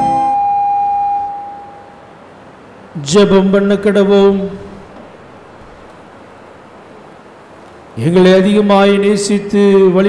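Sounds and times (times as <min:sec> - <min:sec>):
organ chord: 0:00.0 - 0:01.9.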